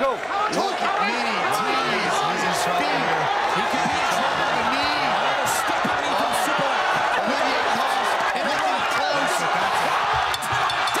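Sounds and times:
arena crowd roaring: 0:00.0 - 0:11.0
excited voices shouting: 0:00.0 - 0:11.0.

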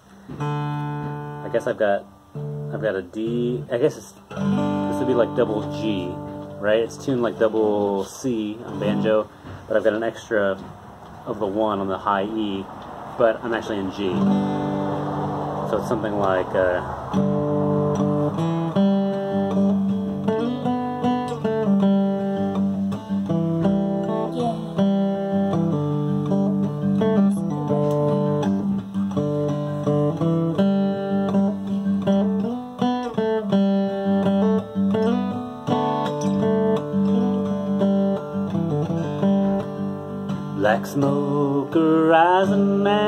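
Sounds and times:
acoustic guitar clawhammer picking: 0:00.0 - 0:43.0.

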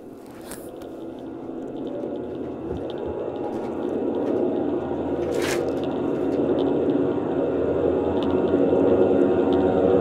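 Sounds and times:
low droning rumble: 0:00.0 - 0:10.0.

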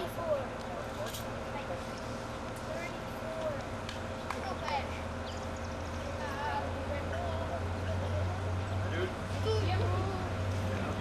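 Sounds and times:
faint voices talking: 0:00.0 - 0:11.0
steady low hum: 0:00.0 - 0:11.0.

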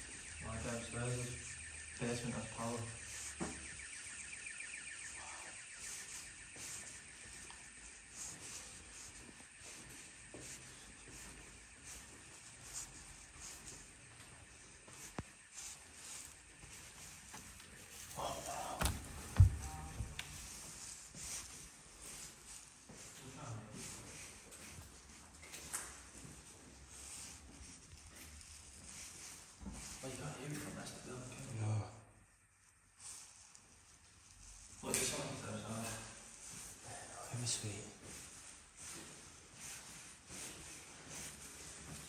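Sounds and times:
pulsing building alarm: 0:00.0 - 0:42.0.

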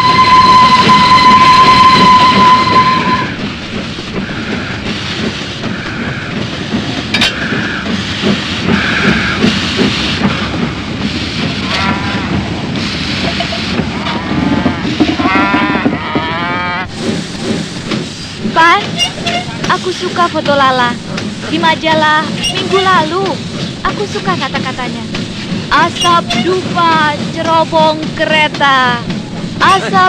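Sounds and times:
steam locomotive whistle: 0:00.0 - 0:03.4, 0:11.6 - 0:12.4
steam bursts: 0:00.0 - 0:15.5
locomotive rumbling: 0:00.0 - 0:30.0.

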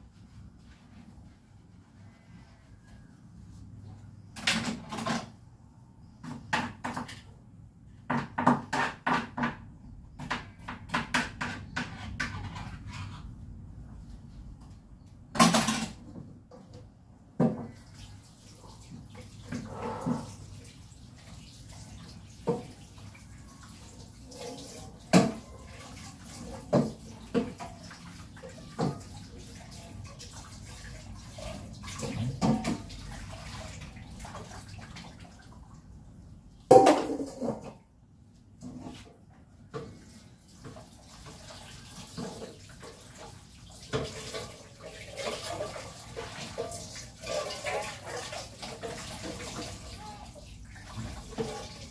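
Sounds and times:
plates knocking against sink: 0:08.0 - 0:12.5, 0:25.1 - 0:25.5, 0:36.7 - 0:37.8
dishes clinking and clattering: 0:15.3 - 0:16.2, 0:24.3 - 0:27.9, 0:31.4 - 0:33.0, 0:36.7 - 0:37.8
water running: 0:17.4 - 0:37.7, 0:39.7 - 0:51.9.

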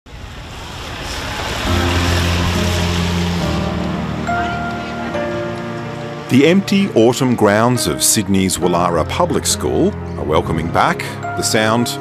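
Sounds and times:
tyres hissing on wet road: 0:00.1 - 0:07.8
low sustained music notes: 0:00.7 - 0:12.0.

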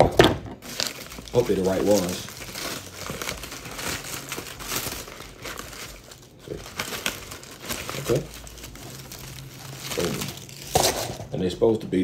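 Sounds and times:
packing paper crinkling: 0:00.0 - 0:11.3.

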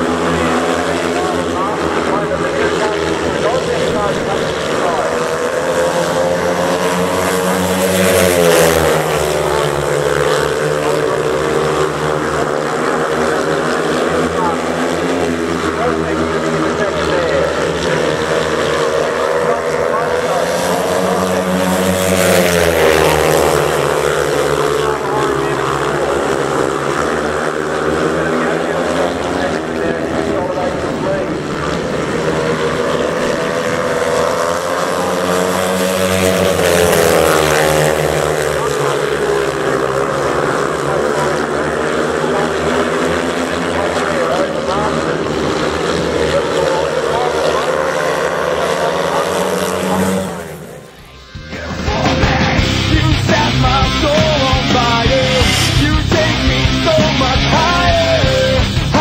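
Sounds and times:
speedway motorcycles racing: 0:00.0 - 0:59.0.

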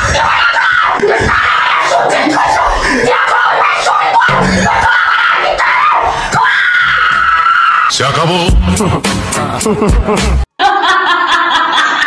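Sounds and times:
woman screaming: 0:00.0 - 0:07.9.

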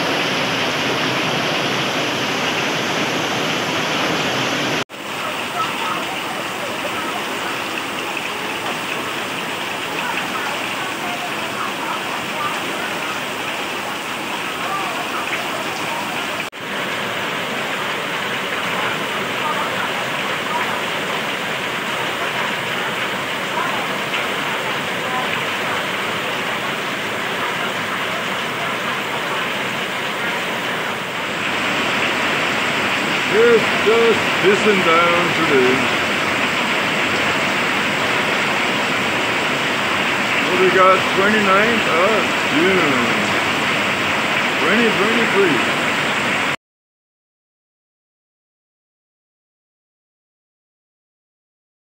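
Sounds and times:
heavy rain pouring: 0:00.0 - 0:46.6.

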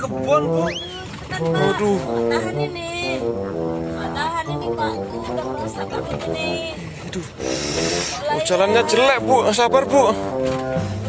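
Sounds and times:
short hiss: 0:07.4 - 0:08.3.

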